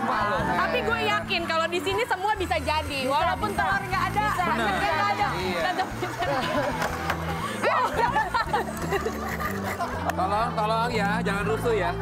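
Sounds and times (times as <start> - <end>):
background music: 0.0 - 12.0
people chuckling: 5.6 - 10.3.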